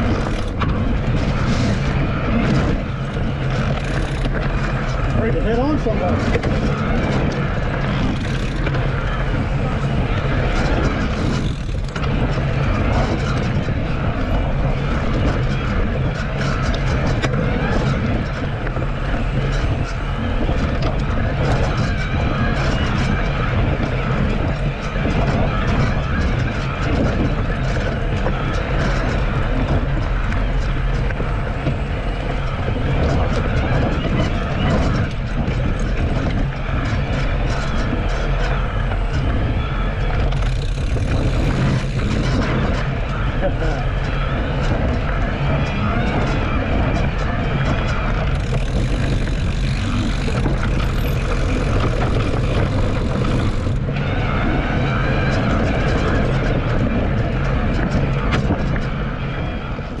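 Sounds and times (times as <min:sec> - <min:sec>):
bike tyres on dirt trail: 0:00.0 - 1:00.0
wind buffeting microphone: 0:00.0 - 1:00.0.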